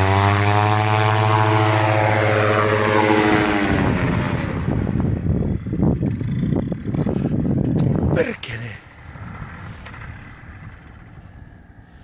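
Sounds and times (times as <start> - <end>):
wind buffeting microphone: 1.0 - 12.0.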